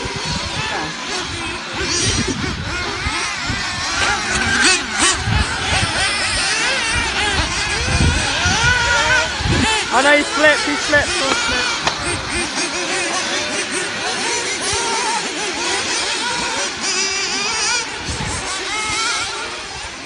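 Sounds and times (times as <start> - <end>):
rc car motors whining: 0.0 - 20.0.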